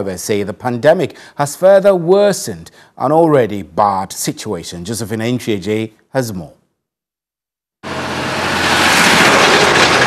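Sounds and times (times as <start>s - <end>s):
truck passing close by: 7.8s - 10.0s.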